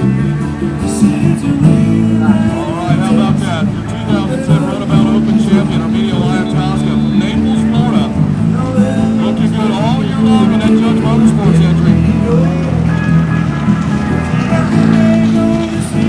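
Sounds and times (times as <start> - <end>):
jet ski engines revving: 0.0 - 16.0
music: 0.0 - 16.0.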